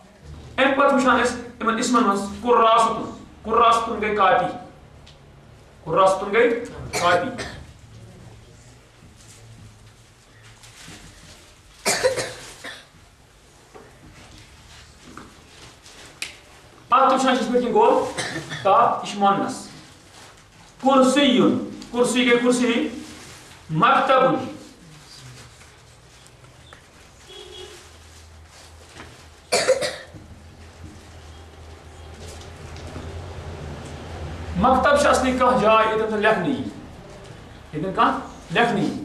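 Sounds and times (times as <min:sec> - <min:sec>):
loud cough: 0:06.8 - 0:07.7, 0:11.8 - 0:12.9, 0:18.0 - 0:18.7, 0:29.5 - 0:30.2.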